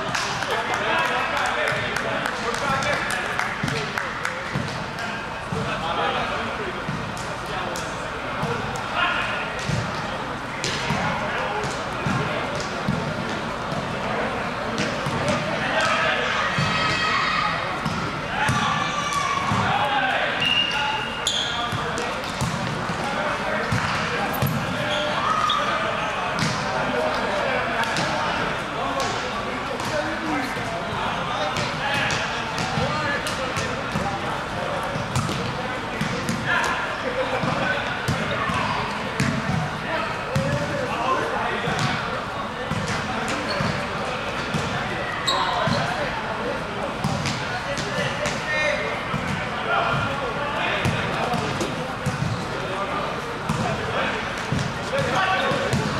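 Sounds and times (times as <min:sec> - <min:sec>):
players calling and chattering: 0:00.0 - 0:55.9.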